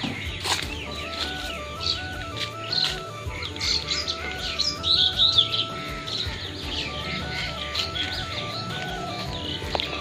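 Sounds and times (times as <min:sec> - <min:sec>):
background music: 0:00.0 - 0:10.0
small birds chirping: 0:00.0 - 0:10.0.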